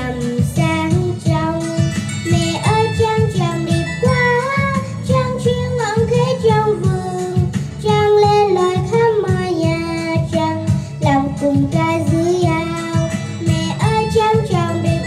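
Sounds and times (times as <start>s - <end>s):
girl singing into a microphone: 0.0s - 15.0s
musical accompaniment with steady beat: 0.0s - 15.0s.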